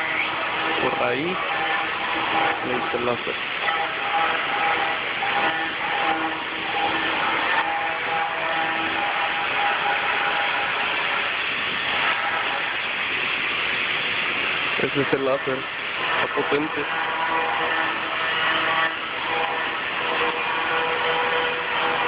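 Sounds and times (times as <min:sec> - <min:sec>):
faint machine whine: 0:00.0 - 0:22.0
machinery hiss: 0:00.0 - 0:22.0.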